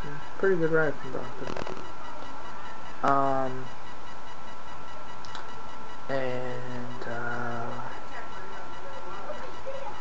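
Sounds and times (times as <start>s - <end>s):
faint high-pitched tones: 0.0s - 10.0s
microphone hiss: 0.0s - 10.0s.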